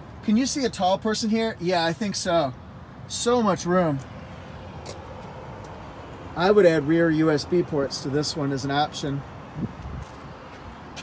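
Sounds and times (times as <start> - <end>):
wind rumble on microphone: 9.5 - 10.3.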